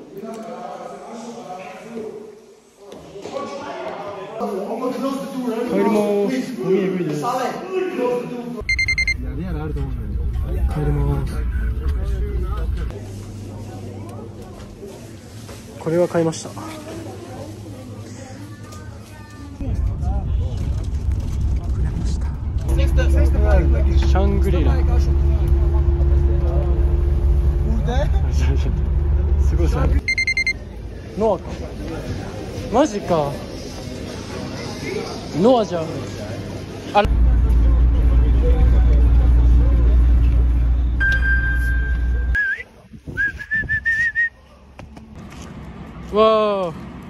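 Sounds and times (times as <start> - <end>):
passengers talking: 4.4 - 47.0
bus engine and road rumble: 8.6 - 16.2, 19.3 - 32.8, 36.4 - 47.0
rapid high electronic beeping: 8.7 - 9.2, 30.0 - 30.6.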